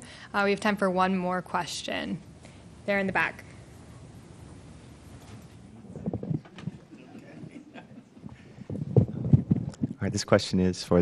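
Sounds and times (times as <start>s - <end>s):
microphone handling thumps: 6.0s - 6.9s, 8.2s - 10.0s.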